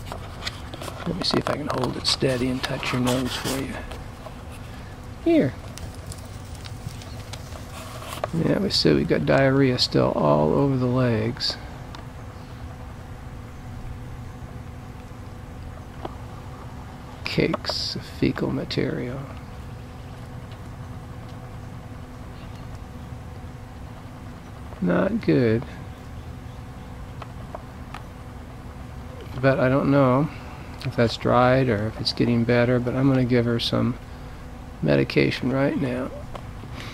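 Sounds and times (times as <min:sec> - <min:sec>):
low mechanical hum: 0:00.0 - 0:36.9
low steady background noise: 0:00.0 - 0:36.9.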